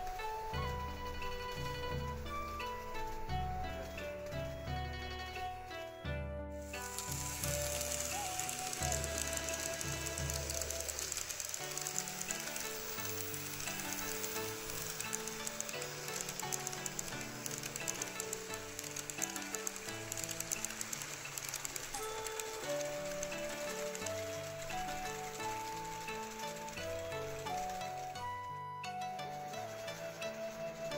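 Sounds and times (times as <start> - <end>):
model train rolling on track: 0.0 - 6.0, 6.6 - 30.9.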